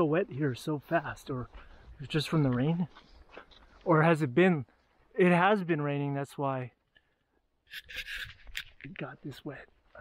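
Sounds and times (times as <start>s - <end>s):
rustling scraping noise: 7.7s - 9.1s.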